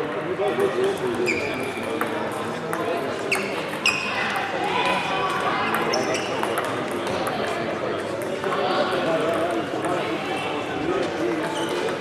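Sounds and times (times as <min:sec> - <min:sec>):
short high squeaks: 0:01.2 - 0:01.6.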